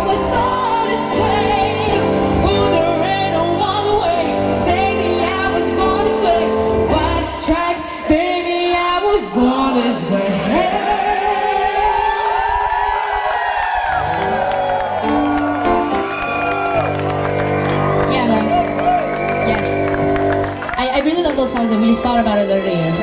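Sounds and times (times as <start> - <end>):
woman singing: 0.0 - 10.8
crowd cheering and whooping: 10.2 - 22.2.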